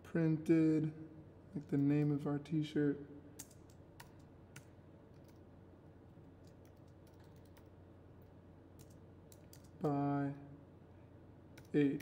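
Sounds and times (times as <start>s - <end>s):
faint computer keyboard typing: 3.4s - 5.4s, 6.3s - 7.7s, 8.7s - 9.8s, 11.5s - 12.0s.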